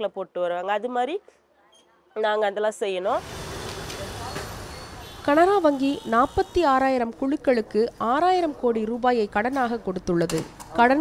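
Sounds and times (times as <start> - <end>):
city street traffic: 3.1 - 11.0.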